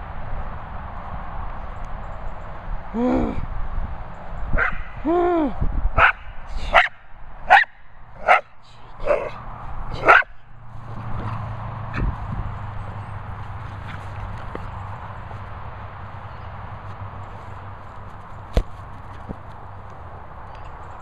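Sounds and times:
small dog barking: 6.0s - 9.4s, 10.0s - 10.3s.

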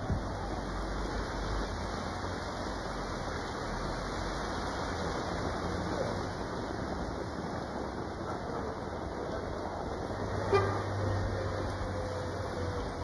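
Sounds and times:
traffic hiss on wet street: 0.0s - 13.0s
car horn toot: 10.5s - 10.8s.

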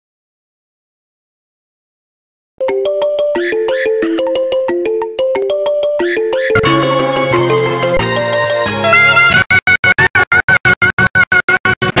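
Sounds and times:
electronic dance track: 6.0s - 10.2s.

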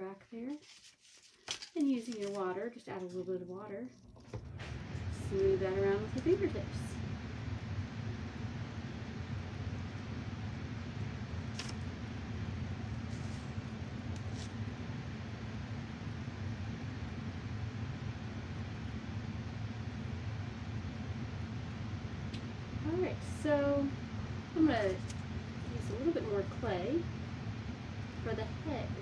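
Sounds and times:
low background hum: 0.0s - 29.0s.

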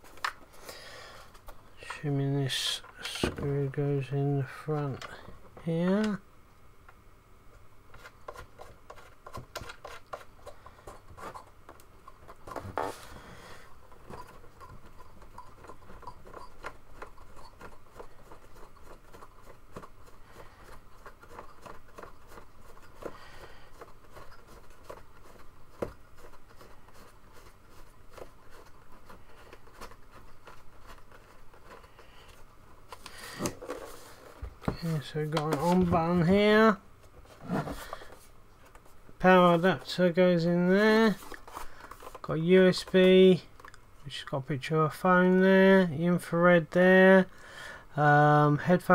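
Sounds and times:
plastic screw clicking and scraping: 7.9s - 34.0s
hands rubbing plastic casing: 7.9s - 36.4s, 37.0s - 43.8s.

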